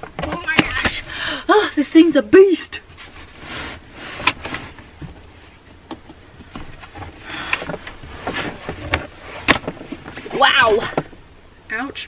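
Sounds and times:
rustling and scraping: 2.8s - 11.3s.

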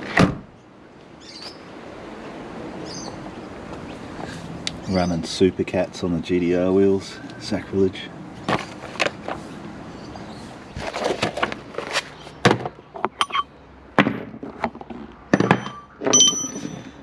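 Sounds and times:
metallic clink: 13.2s - 13.5s, 15.4s - 17.0s
hand tools knocking and clunking: 14.0s - 17.0s.

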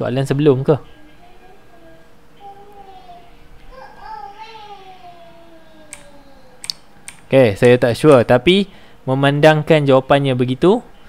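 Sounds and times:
sharp computer clicks: 5.9s - 7.8s.

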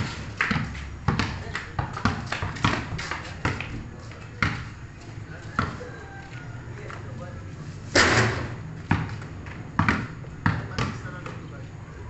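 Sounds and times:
basketball bouncing on concrete: 0.0s - 4.7s, 5.4s - 5.9s, 8.8s - 11.5s.

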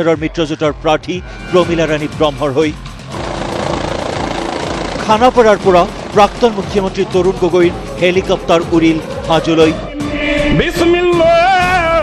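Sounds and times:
helicopter rotor and engine: 2.7s - 9.6s.

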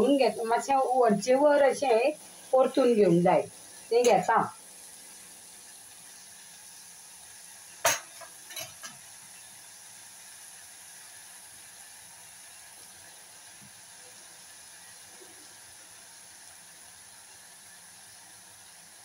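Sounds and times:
pot hissing on gas burner: 0.0s - 19.0s.

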